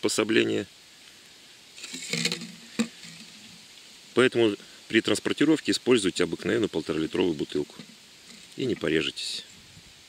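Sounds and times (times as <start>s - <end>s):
plastic bottle crinkling and scraping: 1.8s - 3.8s, 7.0s - 8.9s.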